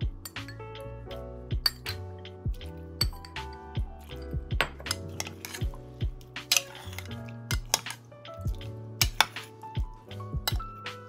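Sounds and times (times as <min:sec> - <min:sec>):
background music: 0:00.0 - 0:11.0
spoon clinking glass bowl: 0:00.2 - 0:00.6, 0:01.6 - 0:02.0, 0:03.0 - 0:05.8, 0:06.4 - 0:08.0, 0:08.6 - 0:09.5, 0:10.5 - 0:10.8.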